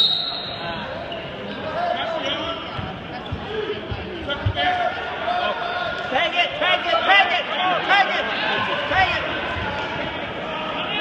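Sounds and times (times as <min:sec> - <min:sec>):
referee's whistle blast: 0:00.0 - 0:00.7
people talking: 0:00.6 - 0:11.0.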